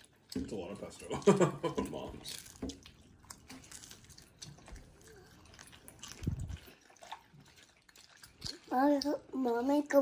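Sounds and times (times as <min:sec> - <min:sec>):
child chewing: 0:00.0 - 0:10.0.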